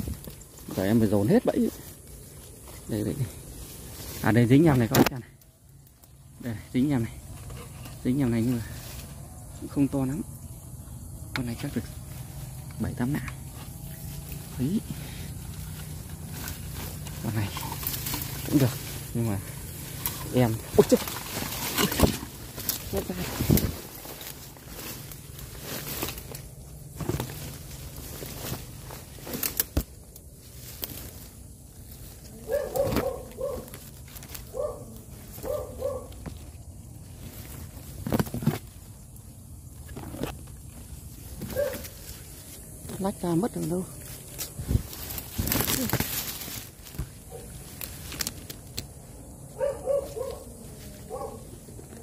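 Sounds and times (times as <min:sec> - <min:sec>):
low background hum: 0:00.0 - 0:52.0
rustling and scraping in leaves: 0:00.0 - 0:52.0.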